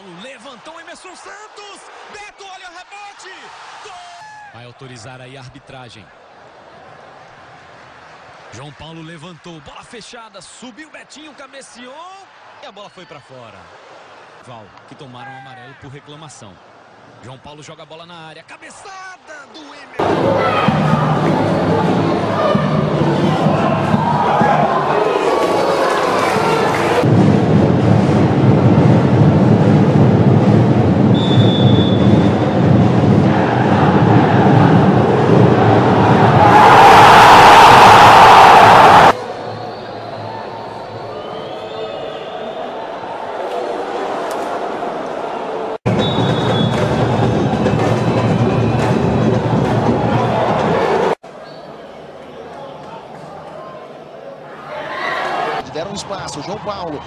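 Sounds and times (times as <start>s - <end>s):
stadium crowd noise: 0.0s - 57.0s
crowd roaring: 20.0s - 27.2s, 31.9s - 51.2s.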